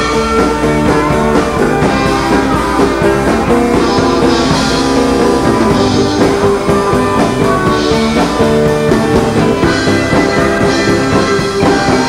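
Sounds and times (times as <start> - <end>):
drum kit: 0.0 - 12.0
electric bass: 0.0 - 12.0
live rock band playing: 0.0 - 12.0
strummed acoustic guitar: 0.0 - 12.0.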